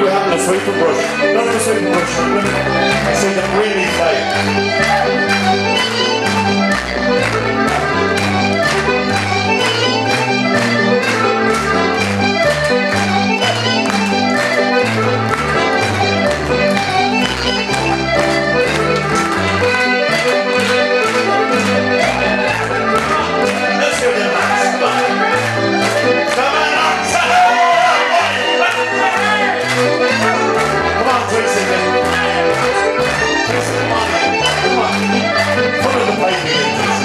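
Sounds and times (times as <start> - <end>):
accordion: 0.0 - 37.0
bass line: 0.0 - 37.0.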